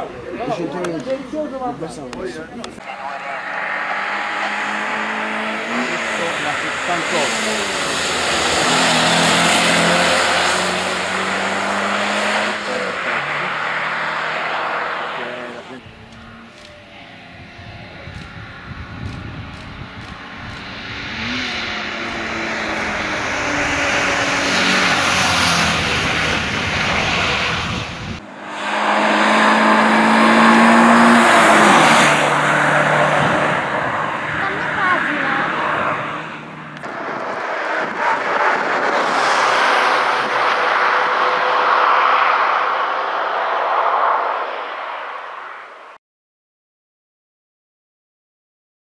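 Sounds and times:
race car engine revving past: 2.7 - 45.9.

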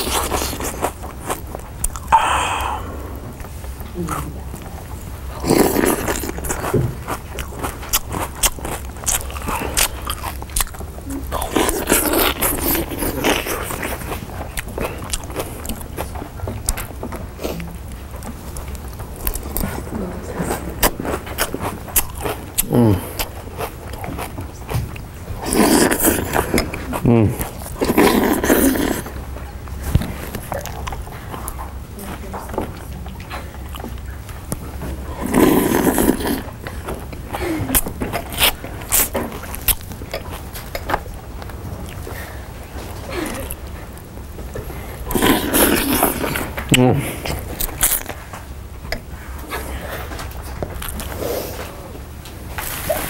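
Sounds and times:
crunching and chewing: 0.0 - 53.0
person eating loudly: 0.0 - 53.0.

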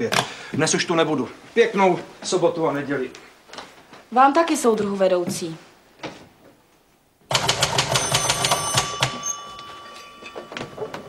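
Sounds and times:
typewriter keys typing fast: 7.3 - 9.1
bell-like ringing tone: 7.9 - 11.0.

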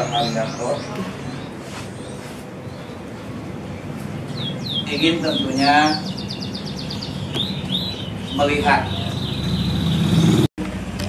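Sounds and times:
vehicle engine rumble: 6.1 - 11.0.

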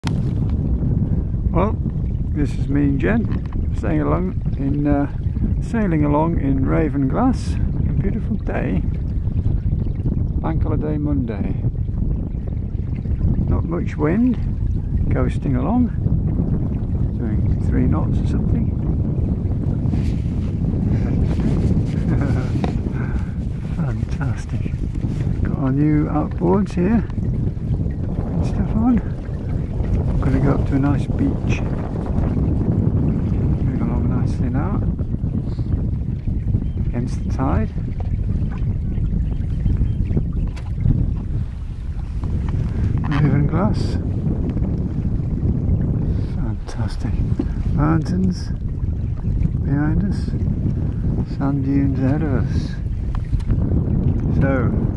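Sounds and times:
water moving past hull: 0.0 - 54.9
wind buffeting microphone: 0.0 - 54.9.

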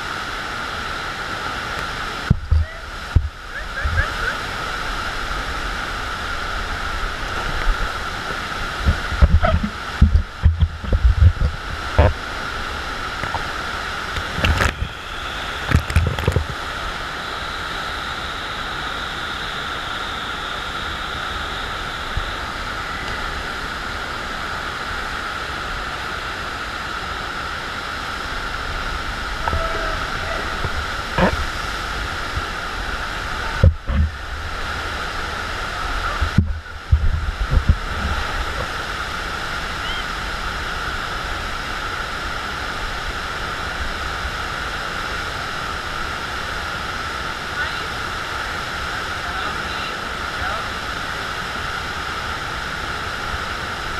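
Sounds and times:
water rushing from wave machine: 0.0 - 53.9
low thumps: 8.8 - 12.1.

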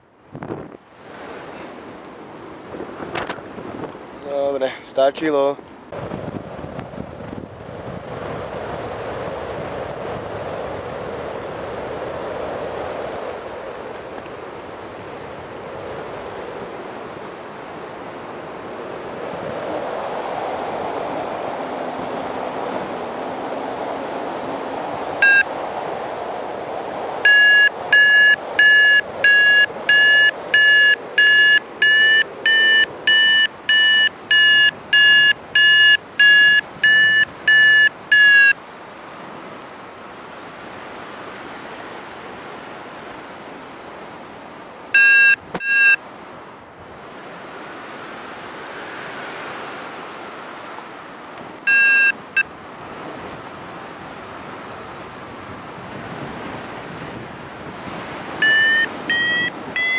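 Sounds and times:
wind on microphone: 0.2 - 4.2, 5.9 - 38.5, 51.4 - 59.9
variometer beeping: 25.2 - 25.5, 27.2 - 38.6, 45.0 - 46.0, 51.6 - 52.5, 58.4 - 59.9.

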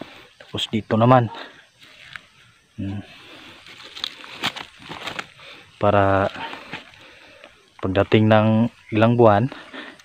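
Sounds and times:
rustling weeds and leaves: 0.0 - 10.0
light crackles: 3.1 - 8.1.

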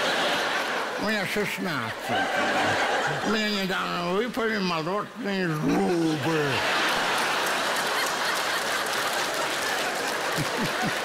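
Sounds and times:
audience laughing: 0.0 - 4.1, 5.6 - 11.0
audience clapping: 6.2 - 11.0.

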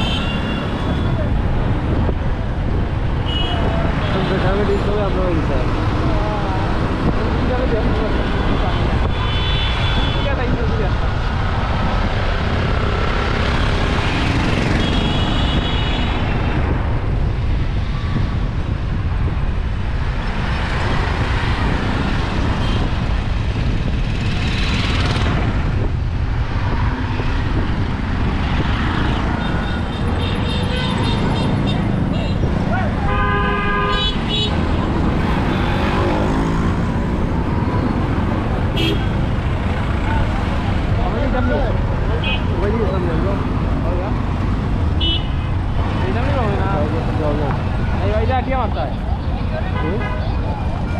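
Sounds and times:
low road rumble: 0.0 - 50.9
vehicle horns tooting: 29.4 - 34.6, 38.7 - 39.2.

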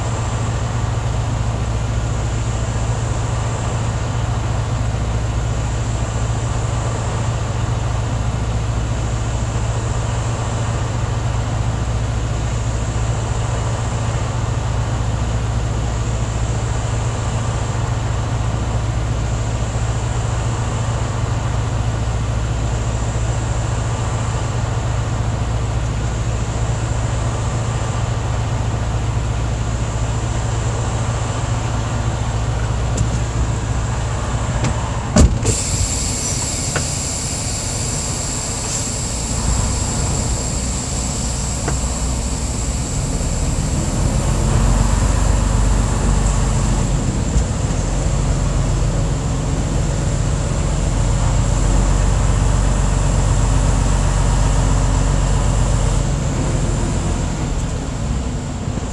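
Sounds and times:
truck diesel engine idling: 0.0 - 58.9
high hiss: 35.4 - 45.9.

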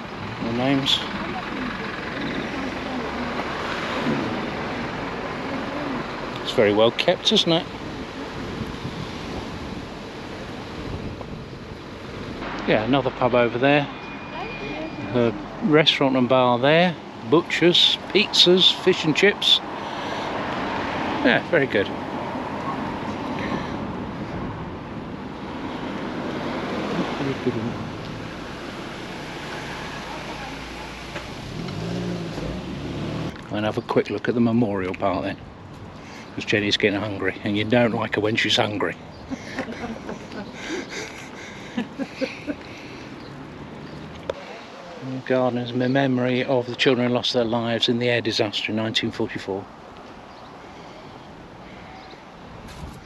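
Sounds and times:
steady rushing street noise: 0.0 - 53.0
faint voices: 0.4 - 8.5.

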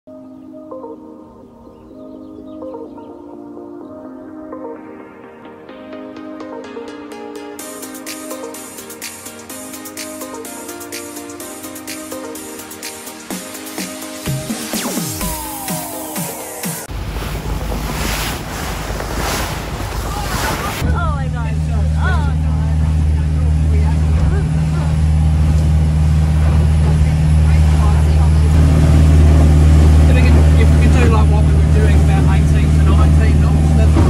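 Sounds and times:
boat engine droning: 15.0 - 34.0
waves washing on rocks: 16.9 - 20.9
wind on microphone: 16.9 - 21.0.

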